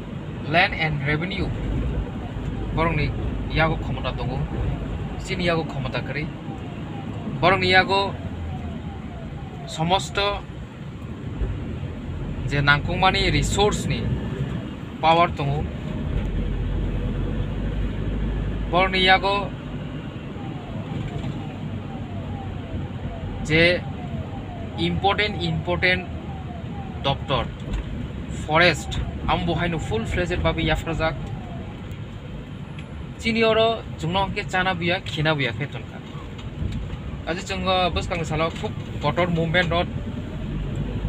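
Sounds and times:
car road noise rumble: 0.0 - 41.0
man talking: 0.4 - 1.6, 2.7 - 6.4, 7.4 - 8.2, 9.6 - 10.5, 12.4 - 14.2, 15.0 - 15.7, 18.7 - 19.5, 23.4 - 24.0, 24.7 - 26.1, 27.0 - 27.6, 28.4 - 31.4, 33.2 - 36.1, 37.3 - 39.9.

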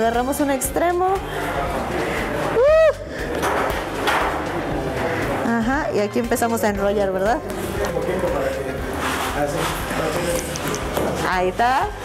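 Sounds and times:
murmur of room noise: 0.0 - 12.0.

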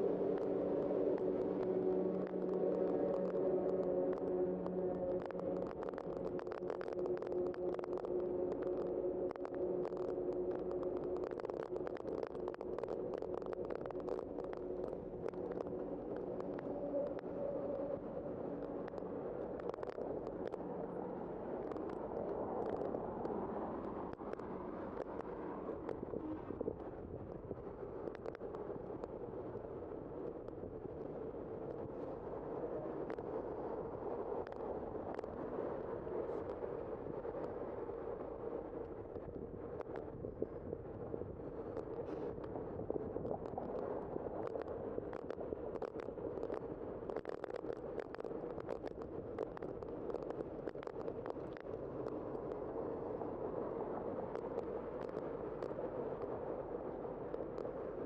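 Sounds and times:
wind and tyre noise: 0.0 - 58.0.

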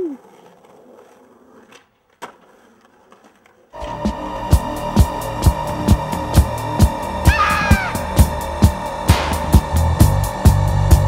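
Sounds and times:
skateboard clacking on asphalt: 0.1 - 3.8
music with steady beat: 4.0 - 11.0.

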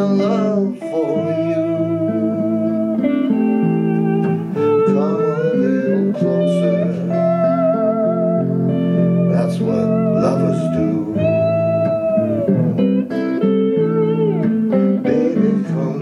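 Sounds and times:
lead electric guitar with bends: 0.0 - 16.0
strummed electric guitar chords: 0.0 - 16.0.

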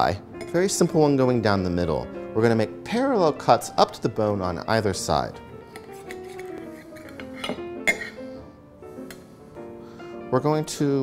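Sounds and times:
soft guitar music: 0.0 - 11.0
knife and fork clinking on plate: 5.7 - 8.2.

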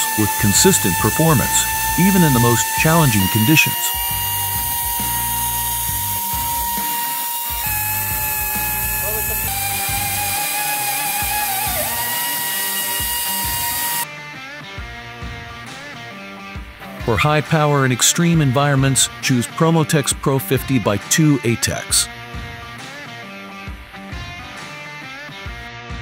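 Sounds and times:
drill whining through steel: 0.0 - 14.1
background music: 0.0 - 26.0.

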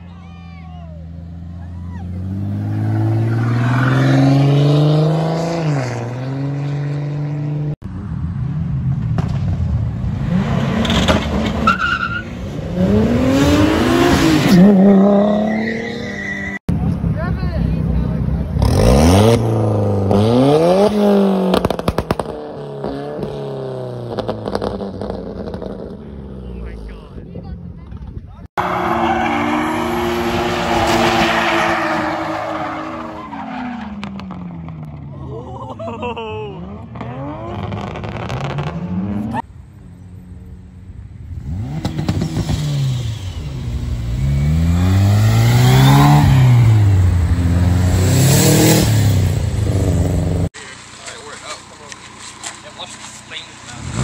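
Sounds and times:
car engines accelerating hard: 1.0 - 11.7, 12.3 - 39.5, 40.2 - 54.0.

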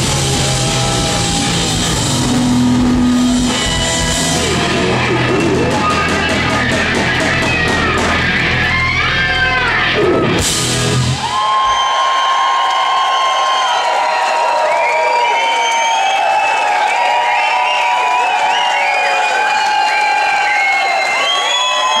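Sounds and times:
live rock band playing: 0.0 - 11.4
crowd cheering and whistling: 0.0 - 22.0.

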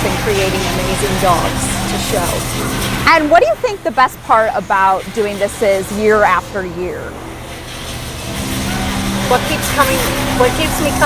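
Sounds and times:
low hum of exhibition hall: 0.0 - 11.0.

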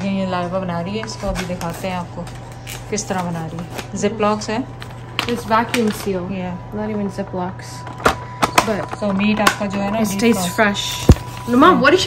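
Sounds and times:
steady low hum: 0.0 - 12.0
woman talking: 0.0 - 12.0.

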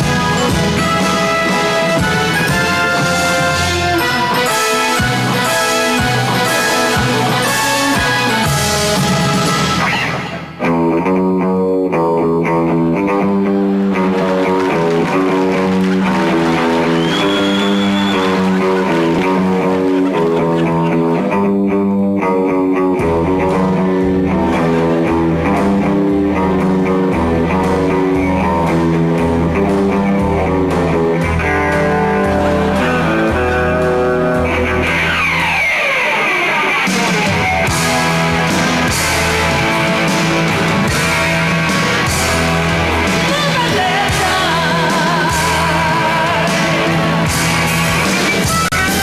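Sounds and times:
electric guitar riff: 0.0 - 49.0
deep bass line: 10.6 - 35.6.

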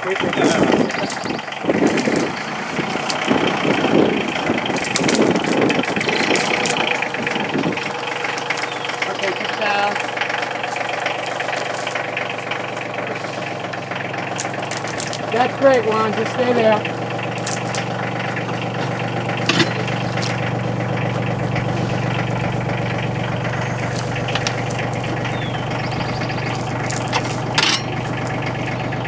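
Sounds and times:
people talking: 0.0 - 2.1, 9.0 - 10.1, 15.2 - 16.9
tractor engine running: 0.0 - 29.0.

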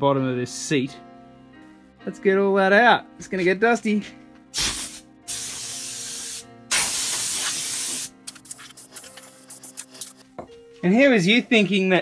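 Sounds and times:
air blow gun hissing: 4.5 - 10.2.

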